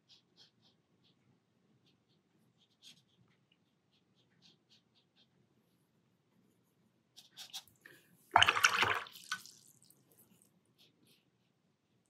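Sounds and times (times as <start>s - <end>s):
paintbrush splashing in water: 8.3s - 9.9s.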